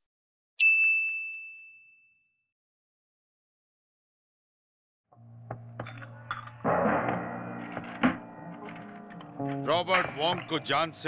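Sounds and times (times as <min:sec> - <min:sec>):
notification bell ding: 0:00.6 - 0:02.3.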